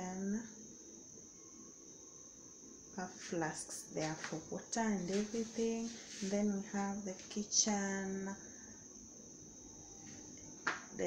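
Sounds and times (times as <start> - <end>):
high-pitched continuous tone: 0.0 - 11.0
person speaking: 3.0 - 7.7.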